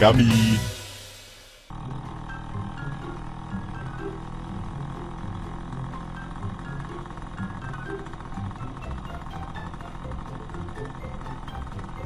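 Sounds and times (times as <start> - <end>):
small motorcycle engine running: 0.0 - 0.9, 1.7 - 12.0
light background music: 0.0 - 12.0.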